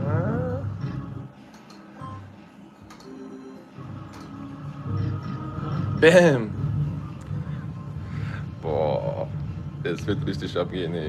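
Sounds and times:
electronic slot machine tones: 0:02.0 - 0:03.8.

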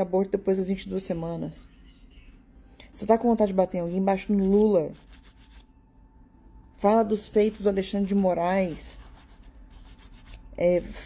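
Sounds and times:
woman speaking: 0:00.0 - 0:01.7, 0:02.9 - 0:05.0, 0:06.8 - 0:09.1, 0:10.6 - 0:11.0.

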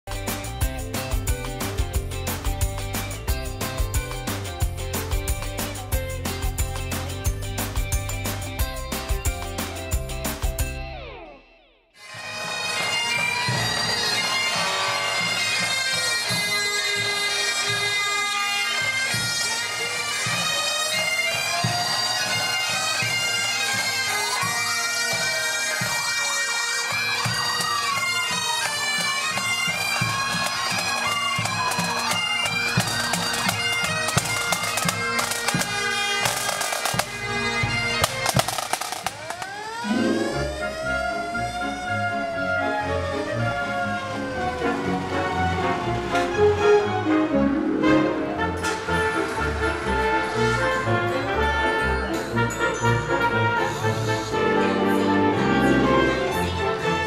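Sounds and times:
drum beats: 0:00.1 - 0:11.0, 0:12.1 - 0:46.4
bagpipes playing over drones: 0:12.0 - 0:57.0.

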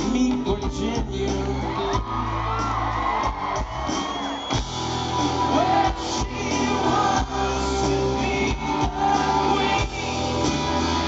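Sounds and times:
live pop-rock band playing: 0:00.0 - 0:11.0.

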